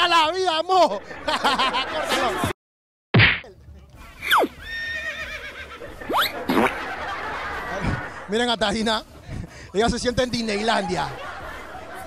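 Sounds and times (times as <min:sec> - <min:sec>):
horse whinnying: 0:04.3 - 0:06.3.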